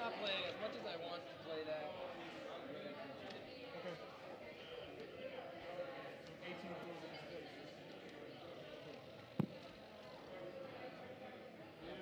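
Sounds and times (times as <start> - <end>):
background conversation: 0.0 - 12.0
sharp thump: 9.4 - 9.6.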